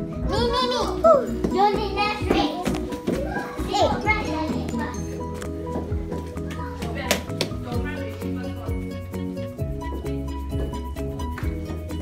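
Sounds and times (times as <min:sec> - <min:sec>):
background music: 0:00.0 - 0:12.0
children calling and squealing: 0:00.2 - 0:05.2, 0:06.3 - 0:07.0.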